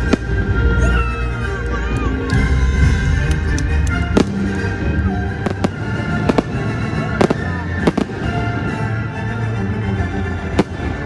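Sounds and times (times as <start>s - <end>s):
music: 0.0s - 11.0s
fireworks bangs: 4.1s - 9.0s.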